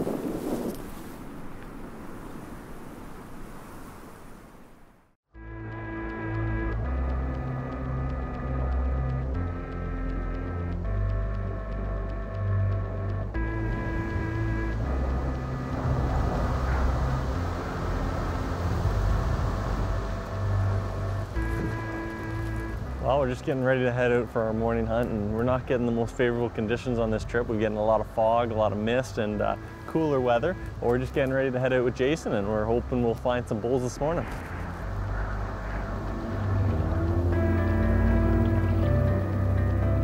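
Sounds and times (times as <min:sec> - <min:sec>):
wind noise on microphone: 0:00.0 - 0:04.7, 0:12.8 - 0:23.1
background music with held chords: 0:05.4 - 0:40.0.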